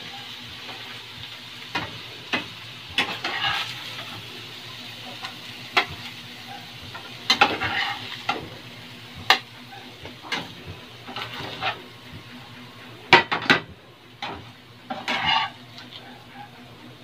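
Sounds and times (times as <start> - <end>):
food sizzling in a frying pan: 0.0 - 17.0
metal spatula scraping a pan: 1.7 - 4.2, 5.2 - 8.5, 9.3 - 11.8, 14.2 - 16.0.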